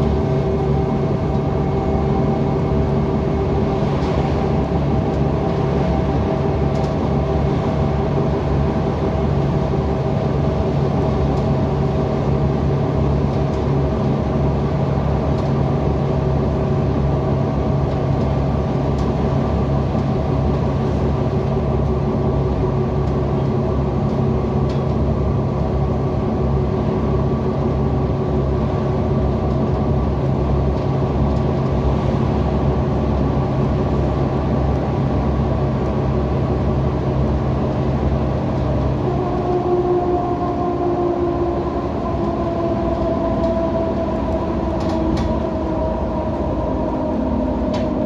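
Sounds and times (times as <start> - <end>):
bus engine drone: 0.0 - 48.0
road rumble: 0.0 - 48.0.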